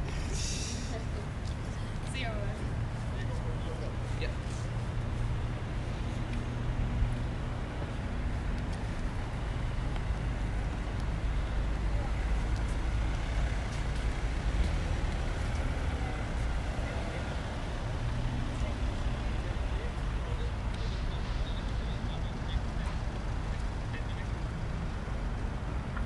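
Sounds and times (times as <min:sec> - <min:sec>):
cars passing: 0:00.0 - 0:26.0.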